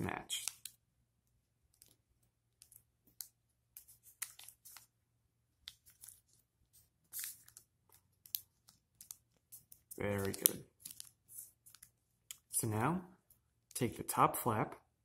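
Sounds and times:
paper crinkling and rustling: 2.6s - 4.9s, 5.7s - 12.5s.

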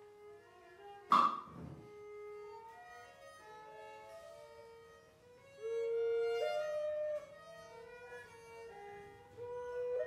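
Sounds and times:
sustained string tones: 1.0s - 3.7s
sharp loud string attack: 1.1s - 1.8s.

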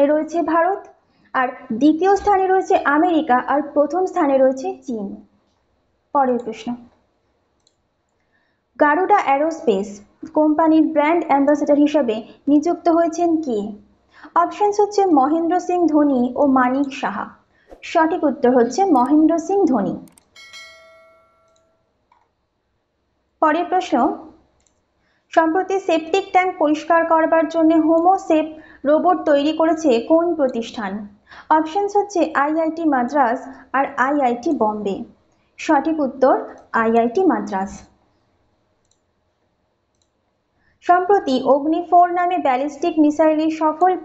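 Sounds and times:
click: 6.4s - 8.4s, 20.0s - 20.3s, 21.5s - 22.3s, 24.6s - 24.8s, 38.8s - 39.1s, 39.9s - 40.2s
small clicks: 7.6s - 8.4s, 24.6s - 24.9s, 38.8s - 39.1s, 39.9s - 40.2s
bright bell ding: 20.4s - 21.9s.

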